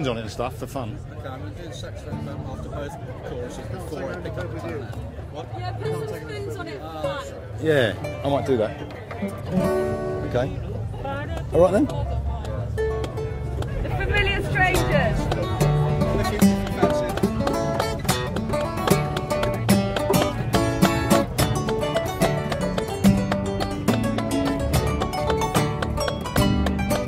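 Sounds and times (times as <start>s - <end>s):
acoustic guitar riff: 8.0s - 10.6s, 12.8s - 27.0s.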